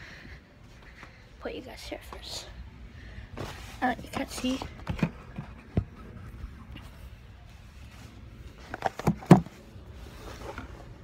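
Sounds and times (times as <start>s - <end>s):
phone being handled and set down: 8.7s - 9.6s.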